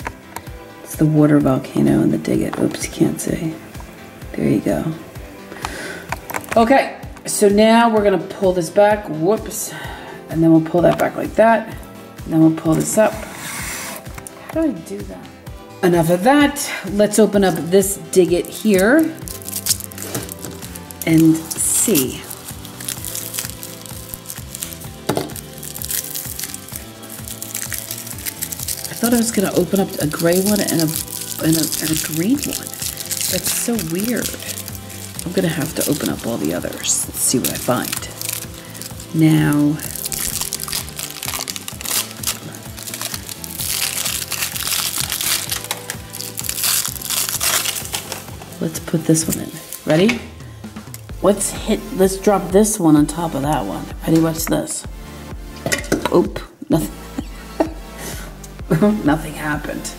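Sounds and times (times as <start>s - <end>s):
background music: 0.0s - 59.9s
foil wrapper crinkling: 18.3s - 48.5s.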